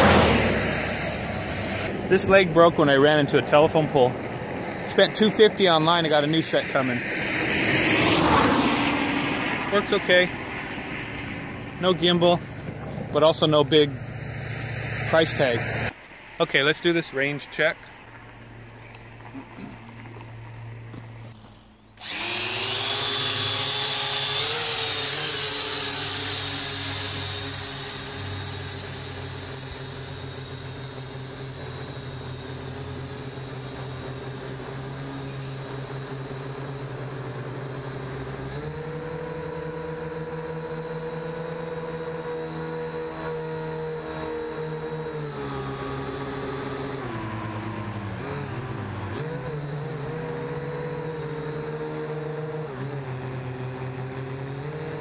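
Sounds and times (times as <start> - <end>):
quadcopter motors buzzing whine: 0.0 - 55.0.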